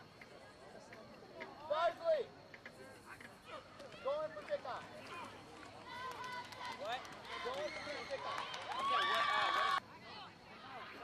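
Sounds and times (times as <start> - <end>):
spectators shouting and cheering: 3.9 - 9.8.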